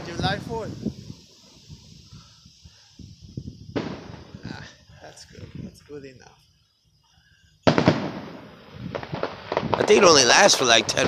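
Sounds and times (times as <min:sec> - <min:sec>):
distant fireworks popping and booming: 0:00.0 - 0:05.9, 0:07.6 - 0:11.0.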